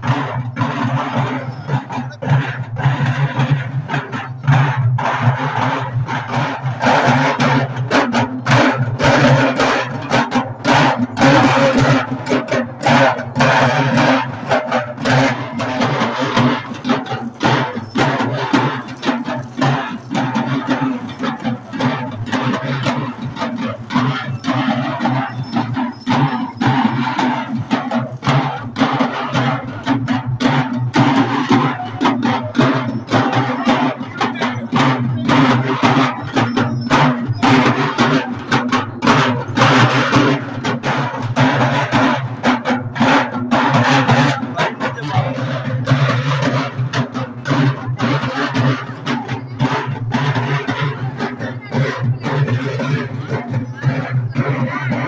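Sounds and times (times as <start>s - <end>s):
barrel drums beaten fast: 0.0s - 55.0s.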